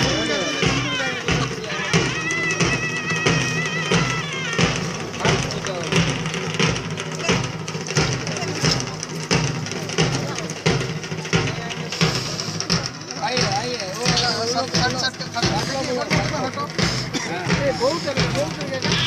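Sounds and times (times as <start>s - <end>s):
crowd voices: 0.0s - 19.0s
steady drum beat: 0.0s - 19.0s.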